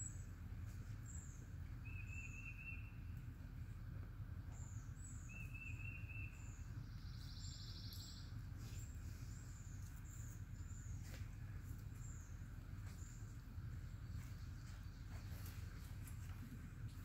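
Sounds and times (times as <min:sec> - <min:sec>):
birds chirping: 0:00.0 - 0:03.4, 0:04.0 - 0:17.0
steady low rumble: 0:00.0 - 0:17.0.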